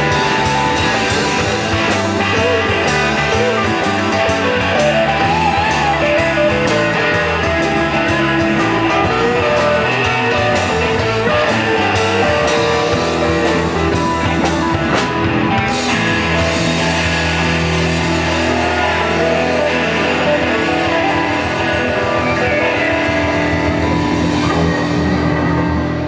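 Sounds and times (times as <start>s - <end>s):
bass: 0.0s - 26.0s
electric guitar lead with bent notes: 0.0s - 26.0s
steady drum beat: 0.0s - 26.0s.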